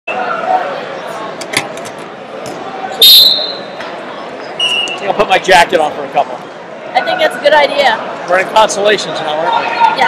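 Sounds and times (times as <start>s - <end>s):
referee's whistle blast: 3.0s - 3.7s, 4.6s - 5.0s.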